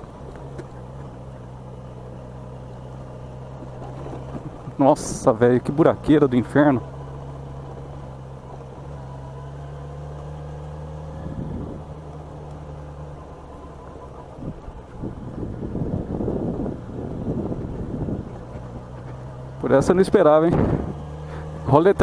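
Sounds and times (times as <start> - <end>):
motorcycle engine running: 0.0 - 22.0
rumbling and knocks over potholes: 0.0 - 22.0.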